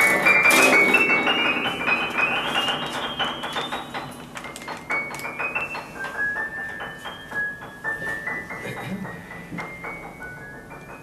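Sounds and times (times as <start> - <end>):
harp plucked notes: 0.0 - 4.4.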